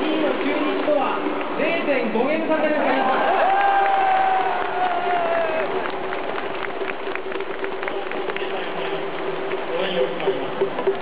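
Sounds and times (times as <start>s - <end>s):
stadium crowd cheering and clapping: 0.0s - 11.0s.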